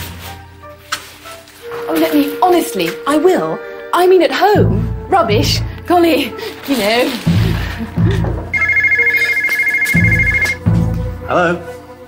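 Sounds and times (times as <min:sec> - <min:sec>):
background music: 0:00.0 - 0:12.0
telephone ringing: 0:08.6 - 0:10.6.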